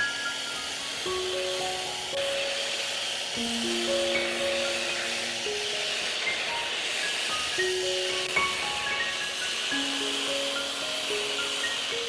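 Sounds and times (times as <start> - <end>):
butane torch hissing: 0.0 - 12.0
slow music of held notes: 0.0 - 12.0.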